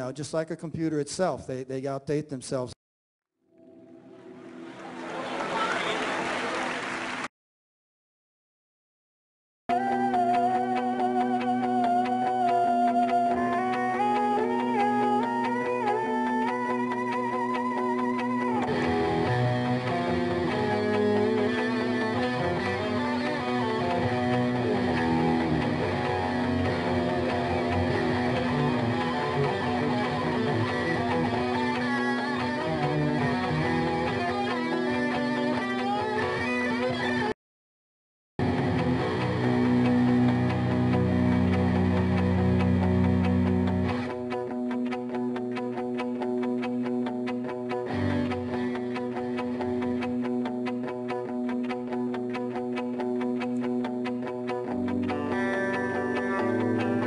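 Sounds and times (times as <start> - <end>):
electric guitar playing: 3.4 - 6.3, 9.7 - 37.4, 38.4 - 57.0.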